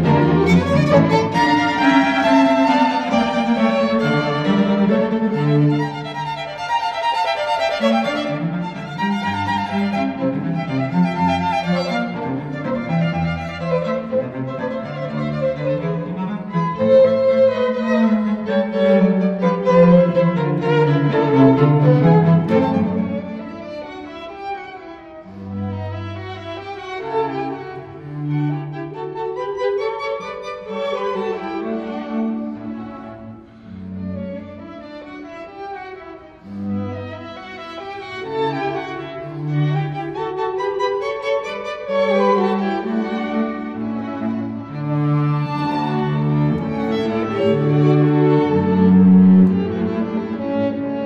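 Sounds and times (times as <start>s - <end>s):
cello bass line: 0.0s - 6.6s, 7.7s - 23.8s, 42.0s - 51.0s
string quintet playing classical music: 0.0s - 51.0s.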